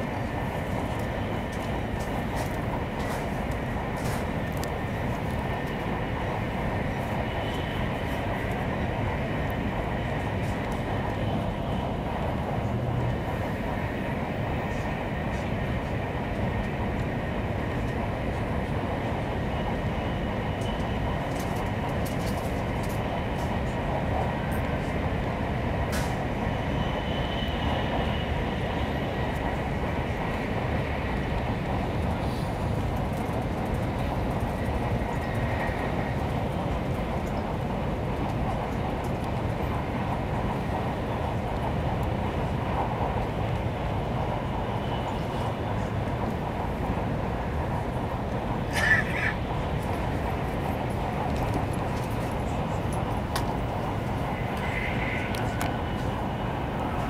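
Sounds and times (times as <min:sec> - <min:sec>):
train cabin rumble: 0:00.0 - 0:57.0.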